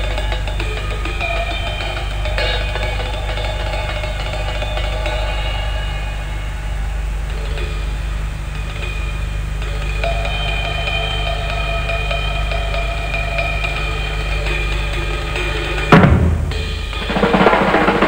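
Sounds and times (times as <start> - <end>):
cymbals ringing: 0.0 - 18.0
steady low hum: 0.0 - 18.0
jazz drum kit playing fast: 15.1 - 18.0.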